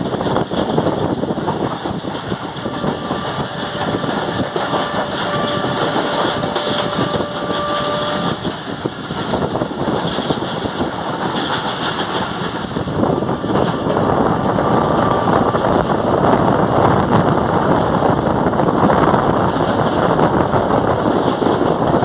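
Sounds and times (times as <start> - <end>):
rushing air: 0.0 - 22.0
train coaches rumbling and rattling: 0.0 - 22.0.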